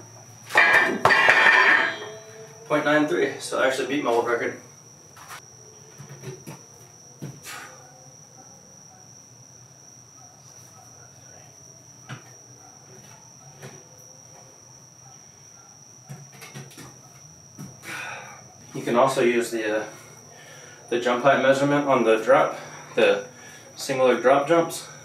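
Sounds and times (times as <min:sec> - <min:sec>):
night insects trilling: 0:00.0 - 0:25.0.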